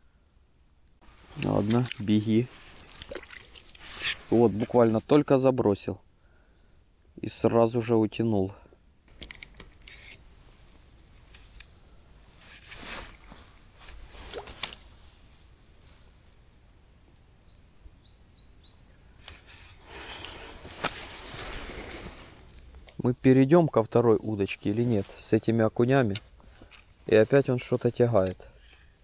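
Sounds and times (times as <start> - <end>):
rustling and clicking handling noises: 9.1 - 10.3
bird chirping: 9.5 - 12.2, 17.2 - 19.4.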